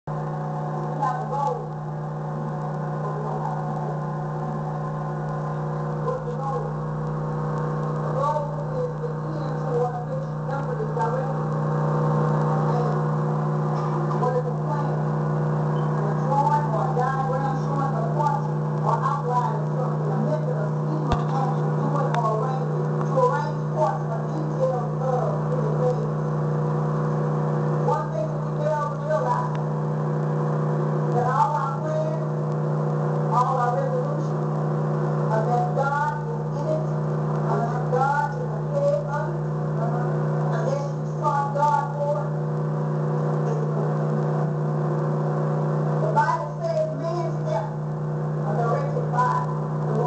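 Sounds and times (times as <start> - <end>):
low droning hum: 0.1 - 50.0.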